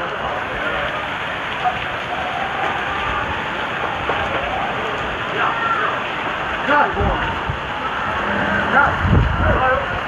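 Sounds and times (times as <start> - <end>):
heavy rain pouring: 0.0 - 10.0.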